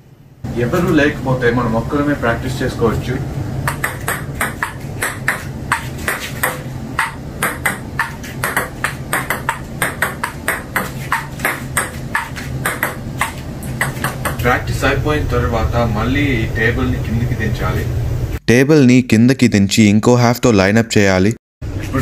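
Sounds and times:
table tennis ball clicks: 0:03.7 - 0:14.4.

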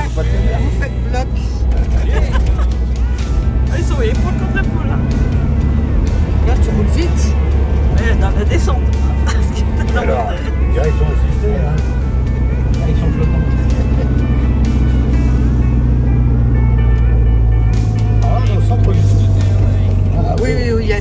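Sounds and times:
car engine drone and road noise: 0:00.0 - 0:21.0
music: 0:00.0 - 0:21.0.

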